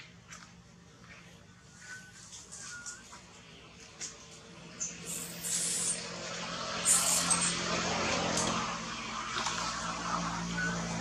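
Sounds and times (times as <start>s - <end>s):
vehicle engine hum: 0.0s - 11.0s
broad hiss: 5.1s - 6.0s.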